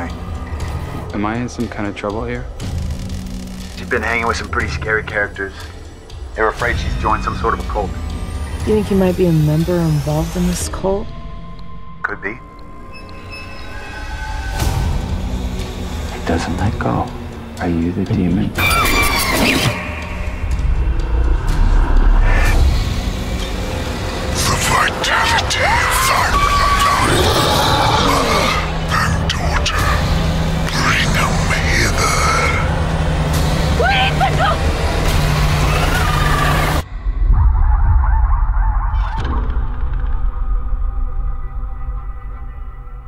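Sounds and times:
low drone: 0.0 - 43.0
deep rumble: 20.0 - 43.0
shrill wavering cries: 24.7 - 28.8
low rumble: 36.4 - 43.0.

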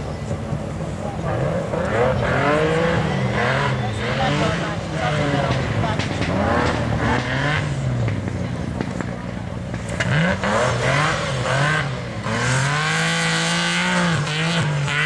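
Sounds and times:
car engine revving past: 1.2 - 15.0.

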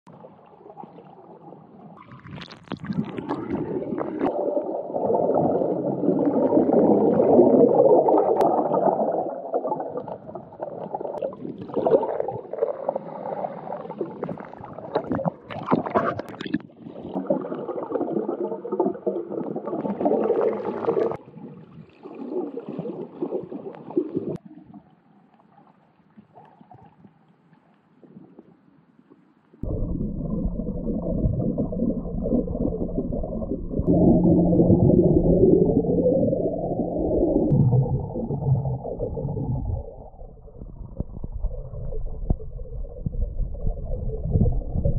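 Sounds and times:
underwater water rushing and bubbling: 0.1 - 27.1, 29.6 - 44.9
sharp bubble crackles: 1.9 - 21.2, 29.6 - 44.9.

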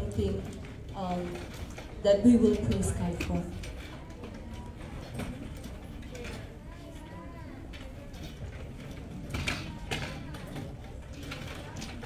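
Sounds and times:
chairs knocking and creaking: 0.0 - 6.6, 7.6 - 12.0
low background chatter: 0.0 - 12.0.

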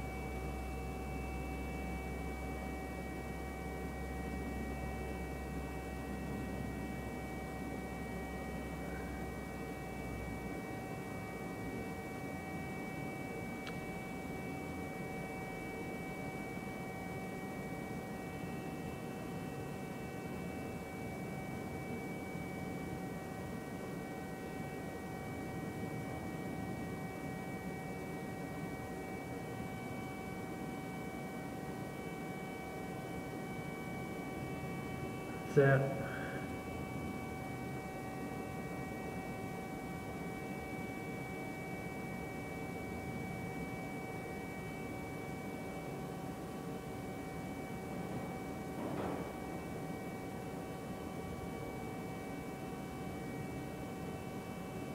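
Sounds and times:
high whine: 31.6 - 39.0.

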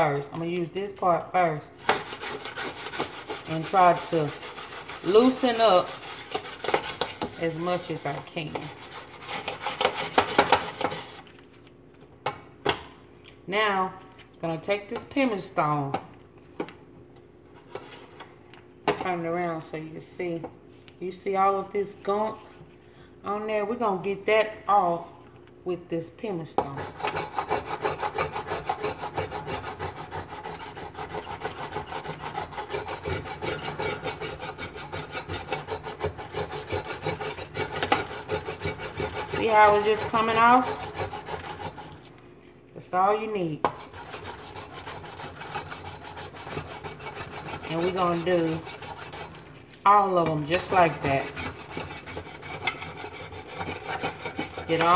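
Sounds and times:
pumice stone scrubbing metal: 1.8 - 11.3, 26.7 - 42.0, 43.7 - 49.5, 50.3 - 54.9.

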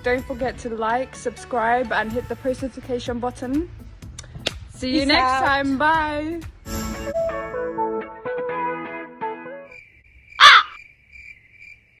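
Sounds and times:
harsh animal call: 10.4 - 10.8.

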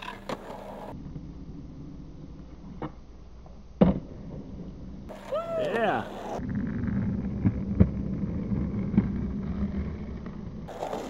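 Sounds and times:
skateboard wheels rolling: 0.0 - 11.0.

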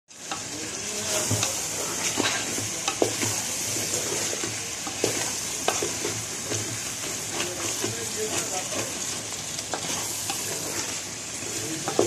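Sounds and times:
bones sizzling in a pot: 0.1 - 12.0.

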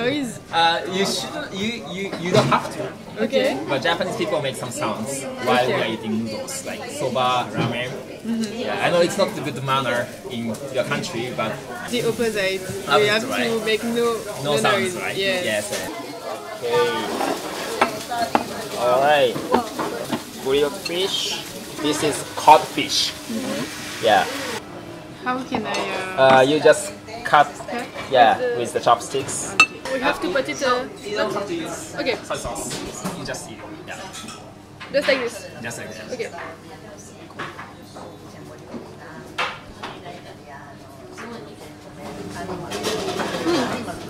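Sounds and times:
tableware clinking: 16.9 - 18.6, 29.5 - 29.9.

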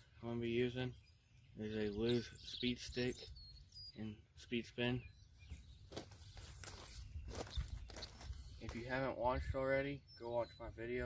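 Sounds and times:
footsteps on wooden boards: 5.5 - 8.9.

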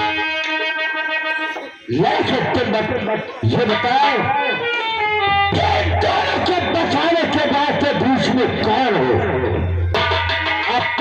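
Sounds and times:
man singing through loudspeakers: 0.0 - 4.8, 5.5 - 9.7
instrumental accompaniment: 0.0 - 11.0.

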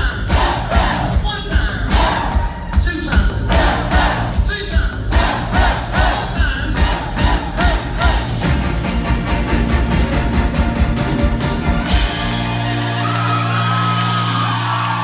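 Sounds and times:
steady drum beat: 0.0 - 13.0
live rock band playing: 0.0 - 15.0.

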